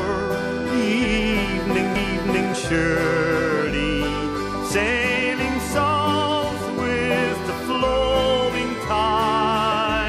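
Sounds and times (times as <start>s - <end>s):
acoustic guitar: 0.0s - 10.0s
steady bass notes: 0.0s - 10.0s.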